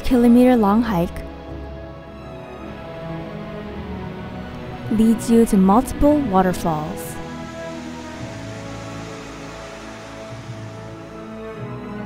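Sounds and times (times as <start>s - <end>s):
slow music with held tones: 0.0s - 12.0s
rushing river water: 2.2s - 12.0s.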